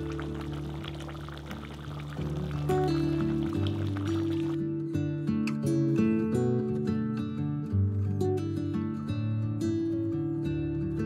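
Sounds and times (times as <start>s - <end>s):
music of held low notes: 0.0s - 11.0s.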